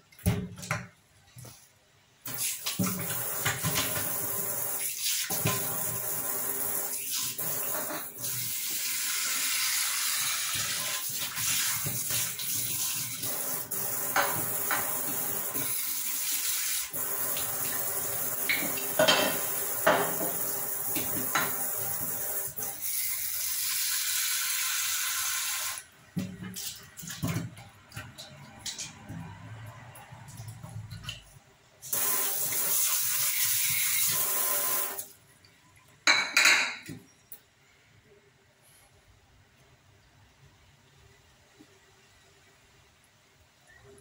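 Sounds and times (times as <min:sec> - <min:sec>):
dishes knocking and clinking: 0:18.5 - 0:20.4, 0:36.0 - 0:37.1.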